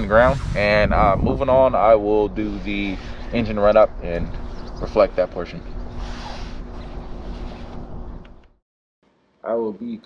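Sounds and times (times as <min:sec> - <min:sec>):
wind rumble on microphone: 0:00.0 - 0:03.5.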